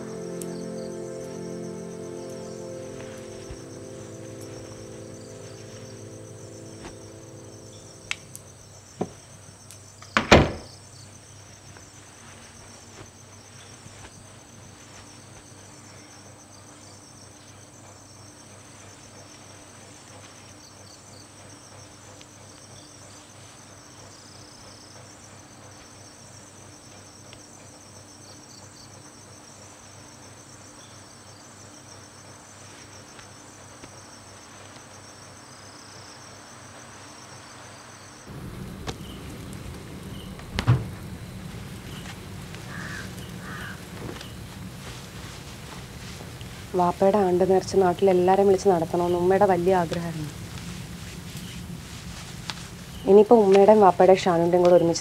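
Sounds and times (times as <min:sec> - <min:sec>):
room ambience: 0:00.0 - 0:09.3, 0:38.3 - 0:55.0
crickets chirring: 0:00.0 - 0:55.0.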